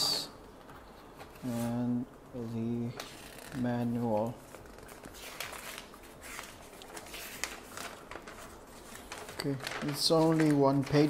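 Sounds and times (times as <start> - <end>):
paper rustling: 2.8 - 11.0.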